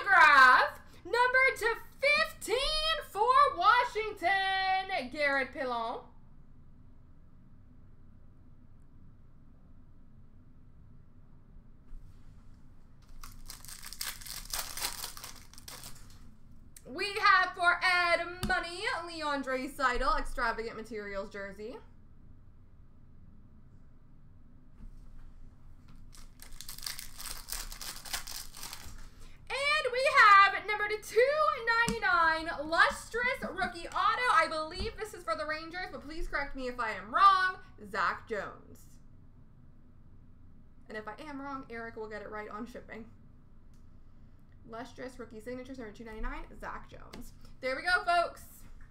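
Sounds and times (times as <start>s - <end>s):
trading cards crinkling and rustling: 13.0s - 16.3s, 25.9s - 29.3s.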